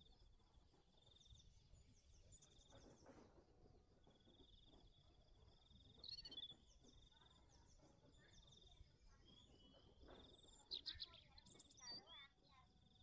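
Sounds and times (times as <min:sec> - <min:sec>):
bird chirps: 0:05.4 - 0:12.4.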